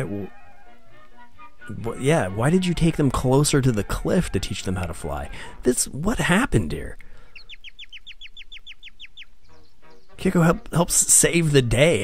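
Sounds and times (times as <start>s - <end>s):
cartoon baby bird chirping: 7.2s - 10.8s.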